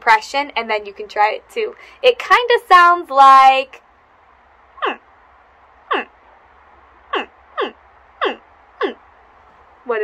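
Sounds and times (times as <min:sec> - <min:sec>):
woman imitating chirping cries: 0:04.8 - 0:05.0, 0:05.9 - 0:06.1, 0:07.1 - 0:09.0.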